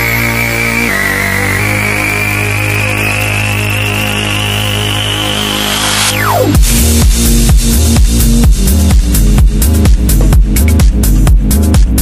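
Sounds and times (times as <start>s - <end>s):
high synth tone rising: 0.0s - 8.0s
low synth drone: 0.0s - 9.7s.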